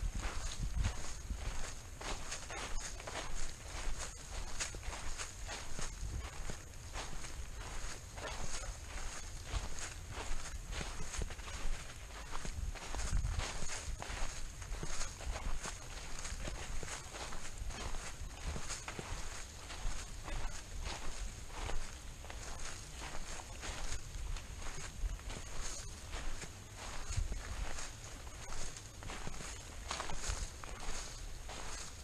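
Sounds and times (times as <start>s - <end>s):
footsteps crunching through leaves: 0.0s - 32.0s.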